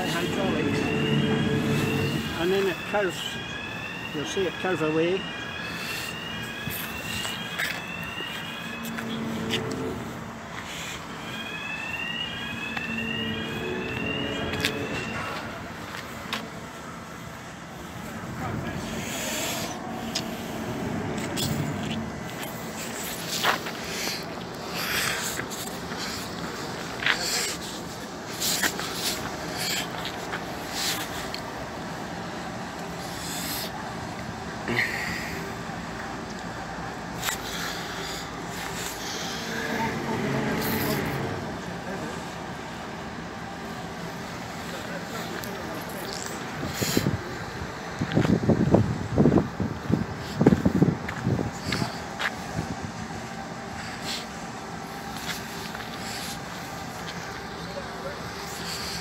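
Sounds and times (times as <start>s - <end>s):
rising electronic alarm tone: 0.0s - 17.0s, 18.2s - 23.0s, 39.4s - 41.7s
outdoor noise: 0.0s - 59.0s
low steady hum: 8.7s - 11.2s.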